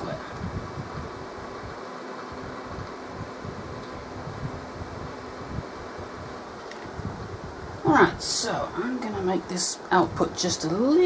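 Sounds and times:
cooling fan whirring: 0:00.0 - 0:11.0.

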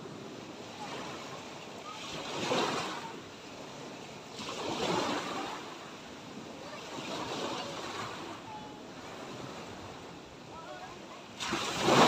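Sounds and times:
waves washing up a beach: 0:00.0 - 0:12.0.

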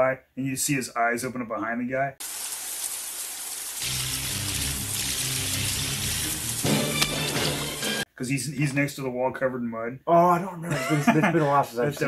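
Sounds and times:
heavy rain: 0:02.2 - 0:07.7.

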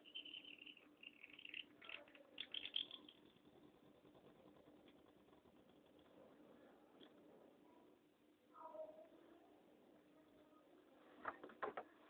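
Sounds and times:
pen nib scratching on paper: 0:00.0 - 0:07.3.

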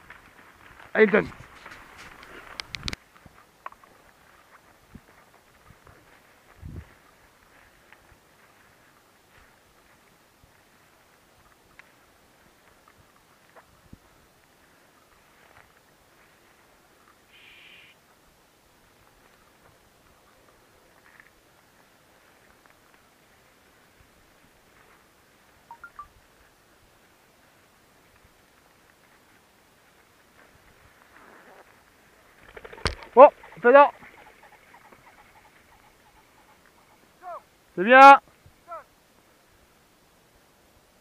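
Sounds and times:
faint rustling: 0:00.0 - 0:10.0
footsteps rustling through crop: 0:00.0 - 0:17.2, 0:18.8 - 0:25.6, 0:26.8 - 0:32.4
small clicks: 0:02.2 - 0:03.0
high-pitched tone: 0:25.7 - 0:26.1.

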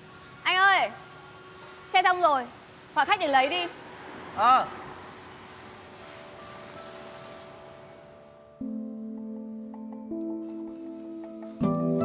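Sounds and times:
room ambience hiss: 0:00.0 - 0:08.7, 0:09.4 - 0:12.0
soft background music: 0:06.3 - 0:12.0.

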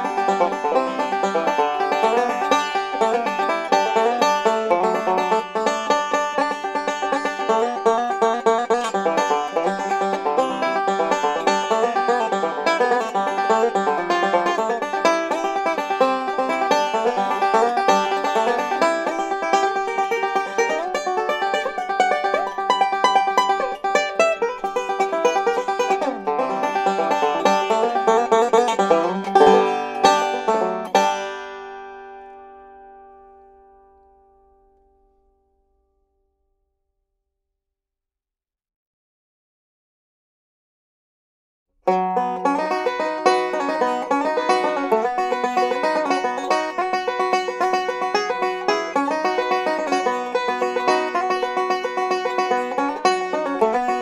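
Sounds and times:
banjo picking: 0:00.0 - 0:33.5, 0:41.8 - 0:54.0.

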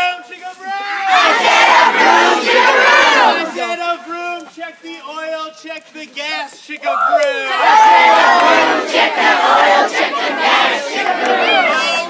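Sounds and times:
crowd of children yelling: 0:11.2 - 0:12.0.

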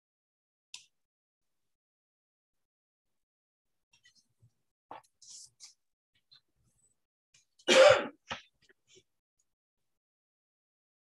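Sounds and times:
loud cough: 0:07.7 - 0:08.2.

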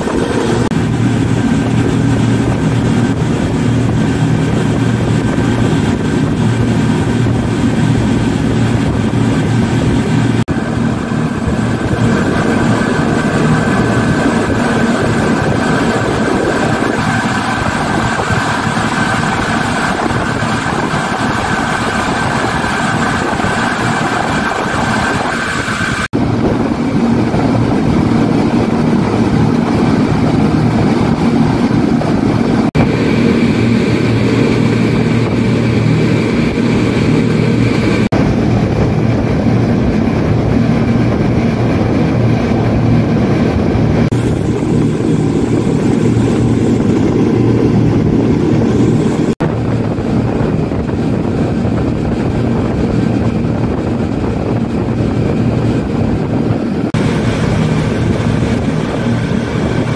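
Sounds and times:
outboard motors droning: 0:00.0 - 0:59.9
rush of boat wake: 0:00.0 - 0:59.9.

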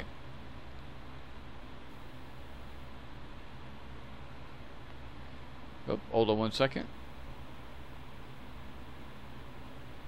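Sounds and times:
background hiss: 0:00.0 - 0:10.0
low hum: 0:00.0 - 0:10.0.

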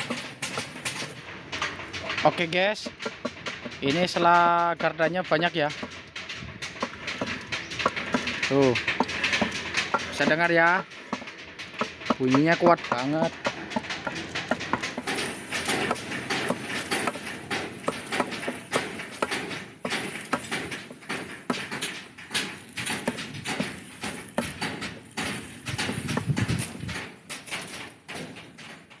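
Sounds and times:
gears knocking and clicking: 0:00.0 - 0:29.0.

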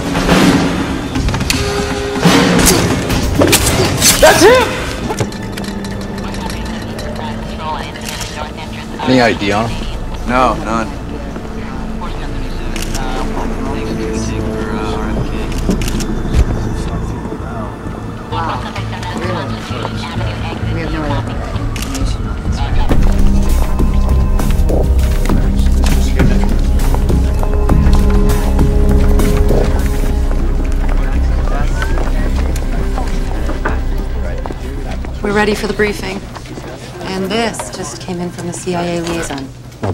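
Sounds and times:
film score music: 0:00.0 - 0:37.5
indistinct voices: 0:01.0 - 0:39.8.

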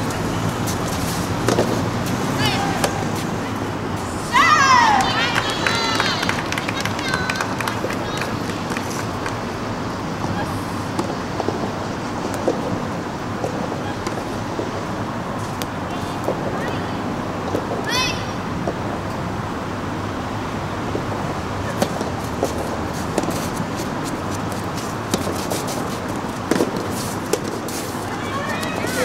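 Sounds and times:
racket striking tennis ball: 0:00.0 - 0:03.4, 0:21.7 - 0:29.0
outdoor background noise: 0:00.0 - 0:29.0.

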